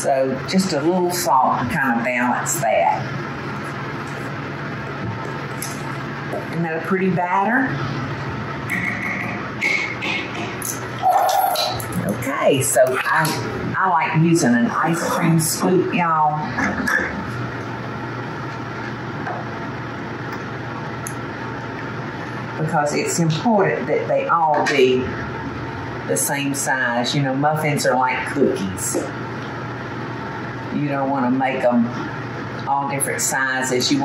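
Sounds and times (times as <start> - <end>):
steady low hum: 0.0 - 34.0.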